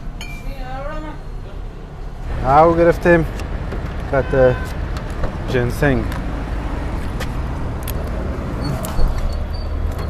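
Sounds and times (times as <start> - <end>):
motor vehicle engine rumble: 0.0 - 10.0.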